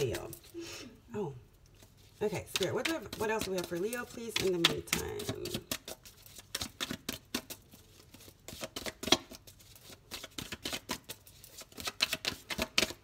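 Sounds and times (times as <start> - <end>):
cards being shuffled by hand: 1.7 - 13.0.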